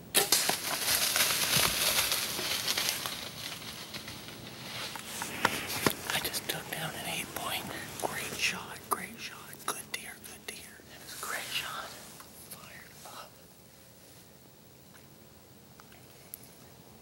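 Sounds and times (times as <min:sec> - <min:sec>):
man whispering: 0:06.0 - 0:13.4.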